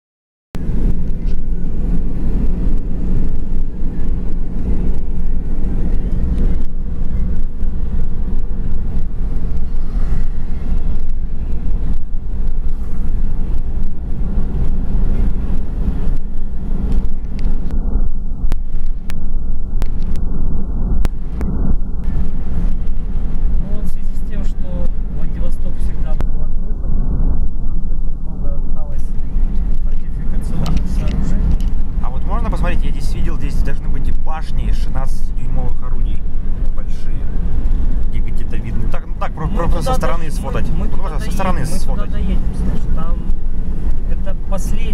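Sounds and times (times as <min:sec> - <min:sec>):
car road and engine rumble: 0:00.6 - 0:44.9.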